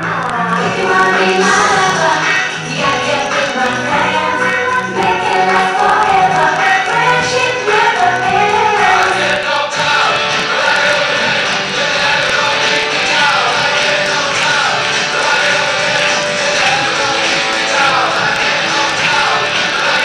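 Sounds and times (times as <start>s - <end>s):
pop songs over speakers: 0.0s - 20.0s.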